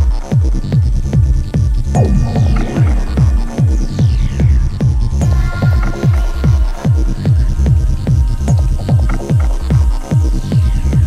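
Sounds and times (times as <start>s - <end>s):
steady kick drum: 0.0s - 11.0s
falling synth sweeps: 2.0s - 5.6s
electronic dance music: 2.0s - 7.6s.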